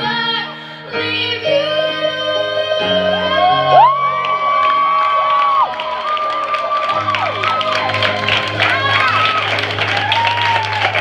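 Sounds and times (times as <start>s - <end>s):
women singing high note: 0.0s - 4.8s
accompaniment music: 0.1s - 11.0s
audience cheering and whooping: 3.2s - 11.0s
audience clapping: 3.8s - 11.0s.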